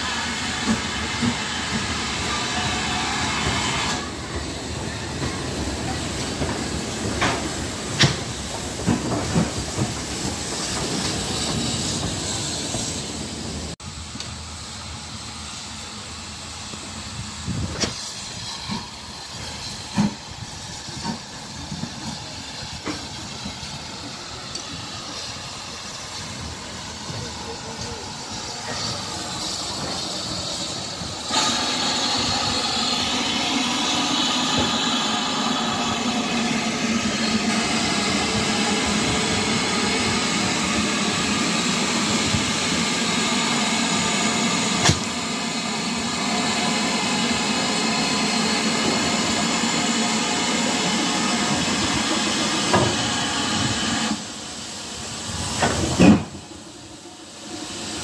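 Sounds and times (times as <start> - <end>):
loud steady steam hiss: 0.0 - 58.0
steam locomotive approaching: 0.0 - 58.0.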